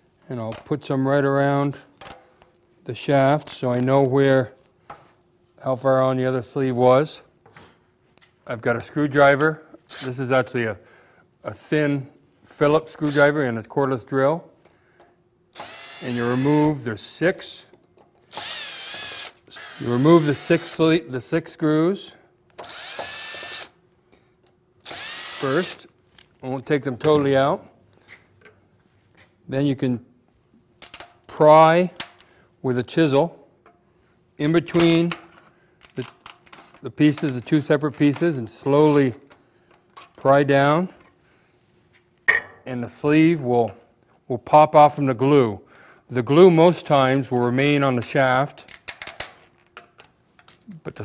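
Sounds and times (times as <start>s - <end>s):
cordless drill bursts: 15.6s - 16.7s, 18.3s - 20.8s, 22.6s - 23.8s, 24.8s - 25.8s.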